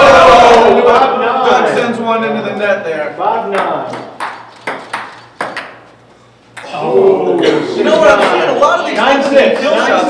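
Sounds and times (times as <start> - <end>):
ping pong ball clicking: 3.6 - 5.9.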